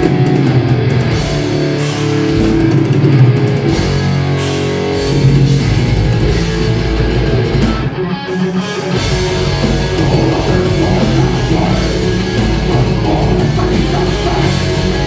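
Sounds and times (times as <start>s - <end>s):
bass guitar: 0.0s - 15.0s
distorted electric guitars: 0.0s - 15.0s
drum kit: 0.0s - 15.0s.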